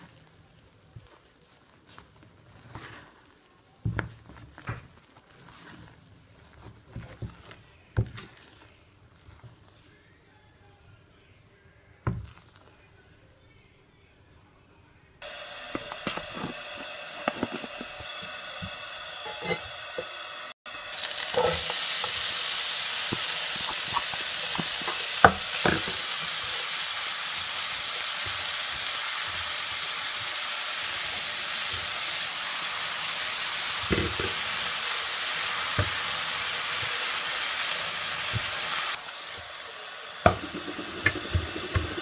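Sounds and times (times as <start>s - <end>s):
apple frying in butter: 15.2s - 42.0s.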